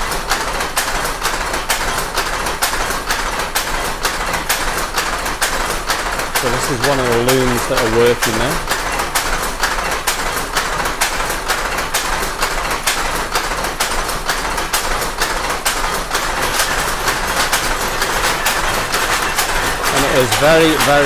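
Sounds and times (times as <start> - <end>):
power looms clattering: 0.0 - 21.0.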